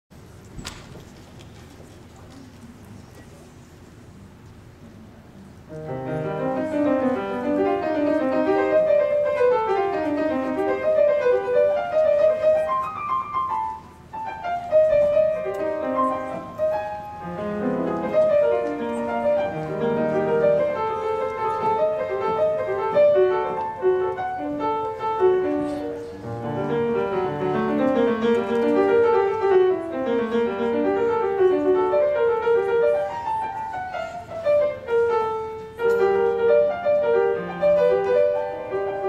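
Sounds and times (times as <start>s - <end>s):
grand piano playing: 5.7s - 39.0s.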